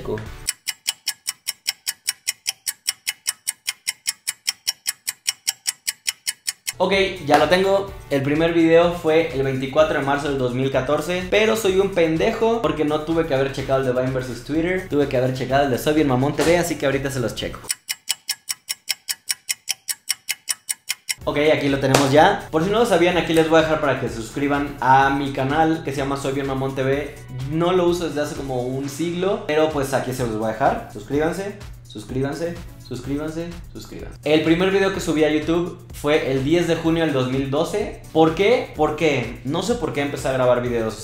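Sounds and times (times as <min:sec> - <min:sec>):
clock ticking: 0:00.0 - 0:07.5, 0:15.8 - 0:23.7
fast clock ticking: 0:00.3 - 0:07.7, 0:10.3 - 0:23.9, 0:29.7 - 0:40.8.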